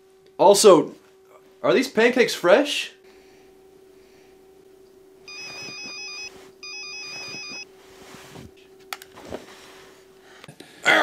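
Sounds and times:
telephone ringing: 5.3 - 7.6.

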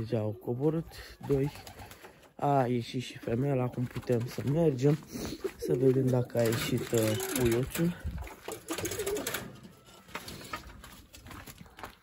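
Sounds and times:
pigeons cooing: 0.0 - 2.3, 6.4 - 10.7.

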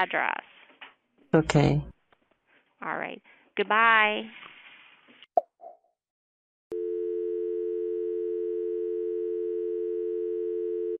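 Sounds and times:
telephone dial tone: 6.7 - 11.0.

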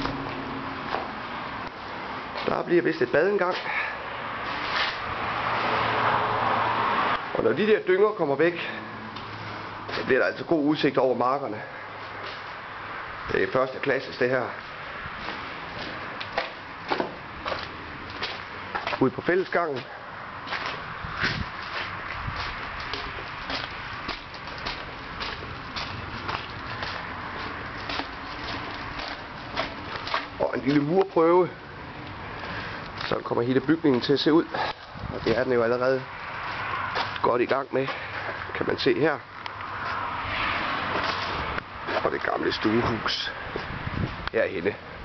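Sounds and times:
footsteps on gritty concrete: 0.0 - 5.7, 9.1 - 10.6, 12.0 - 12.7, 13.4 - 44.3.

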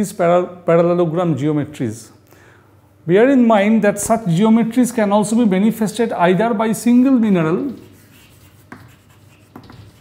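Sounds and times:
chalk scratching on blackboard: 7.2 - 10.0
chalk tapping on board: 7.6 - 10.0.

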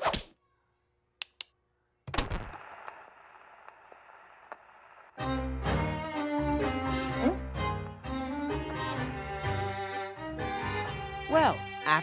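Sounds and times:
vinyl record hiss and crackle: 2.2 - 5.2.

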